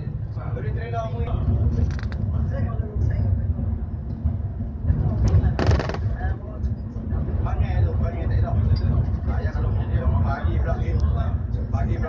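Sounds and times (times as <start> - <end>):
bus engine and road rumble: 0.0 - 12.0
people talking: 4.9 - 12.0.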